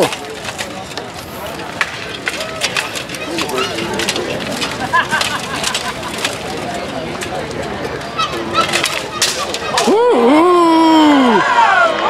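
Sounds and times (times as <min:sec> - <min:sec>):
murmur of spectators' voices: 0:00.0 - 0:12.0.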